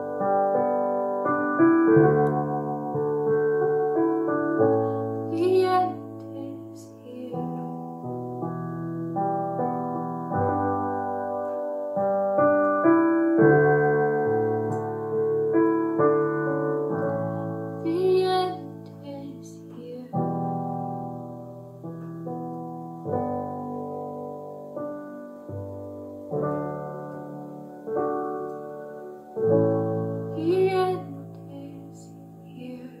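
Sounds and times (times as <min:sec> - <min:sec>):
slow piano chords: 0:00.0 - 0:33.0.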